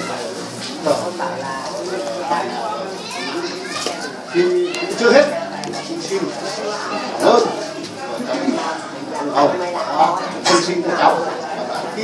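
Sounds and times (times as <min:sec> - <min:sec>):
children chattering and calling out: 0:00.0 - 0:12.0
voices in room: 0:00.0 - 0:12.0.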